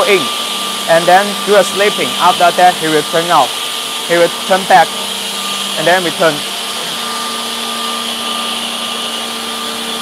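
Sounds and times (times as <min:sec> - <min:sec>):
edge banding machine running: 0:00.0 - 0:10.0.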